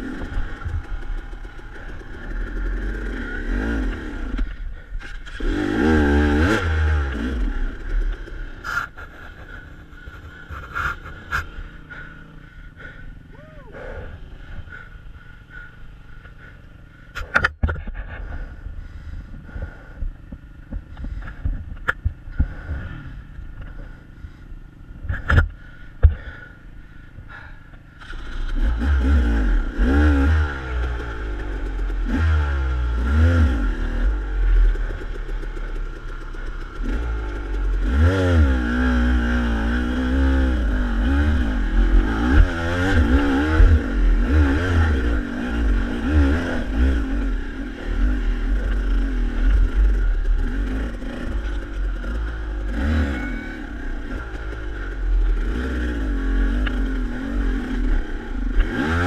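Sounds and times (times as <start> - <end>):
dirt bike engine revving: 0.0 - 14.9, 28.0 - 59.0.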